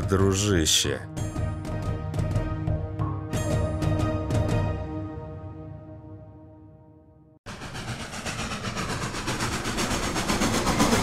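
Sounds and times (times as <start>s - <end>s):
train rail clatter: 7.5s - 11.0s.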